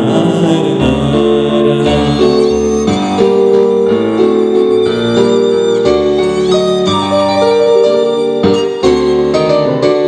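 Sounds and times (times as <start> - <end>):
violin melody: 0.0 - 10.0.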